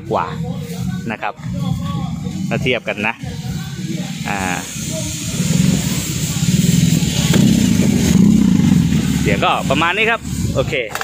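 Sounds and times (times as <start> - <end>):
motorcycle engine exhaust: 0.0 - 11.0.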